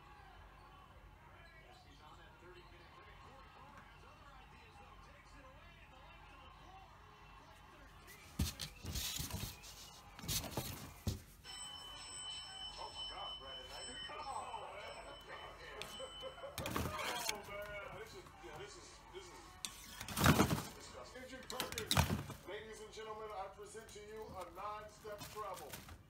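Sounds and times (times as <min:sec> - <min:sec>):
muffled background music: 0:12.7 - 0:26.0
muffled background voices: 0:12.7 - 0:26.0.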